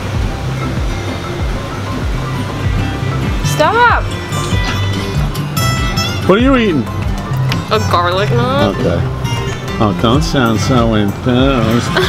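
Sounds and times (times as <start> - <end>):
background music with low bass: 0.0 - 12.0
noisy wash: 0.0 - 12.0.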